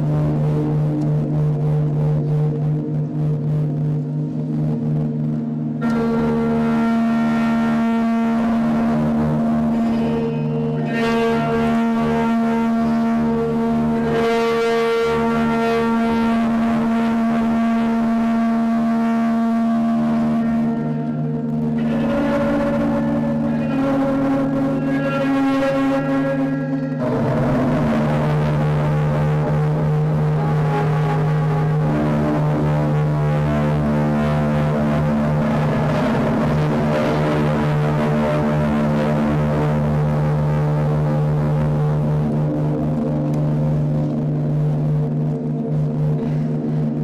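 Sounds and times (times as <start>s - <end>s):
bowed electric guitar drone: 0.0s - 47.0s.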